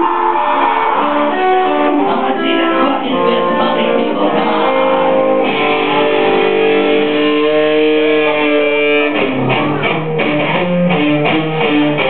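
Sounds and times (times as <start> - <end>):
amplified electric guitars: 0.0 - 12.0.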